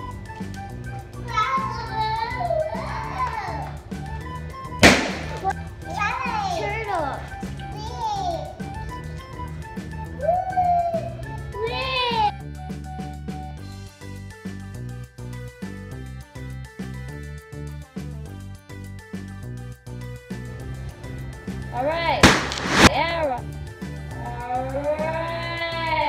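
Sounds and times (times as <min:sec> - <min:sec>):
background music with steady beat: 0:00.0 - 0:26.0
children's excited voices: 0:01.2 - 0:03.8, 0:05.9 - 0:08.6, 0:10.2 - 0:12.3
balloon bursting: 0:04.8 - 0:05.5, 0:22.2 - 0:23.0.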